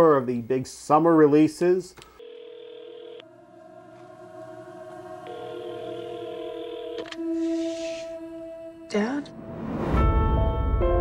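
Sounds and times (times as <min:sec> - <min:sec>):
steady electronic tones: 0:03.2 - 0:08.4.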